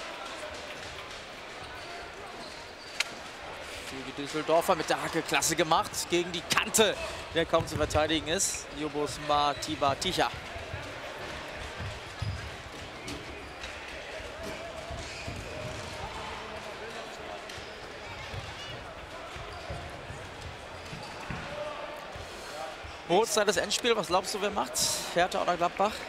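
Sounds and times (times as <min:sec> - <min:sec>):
crowd murmur: 0:00.0 - 0:23.1
football kicked and bouncing: 0:07.5 - 0:08.0, 0:20.9 - 0:21.5.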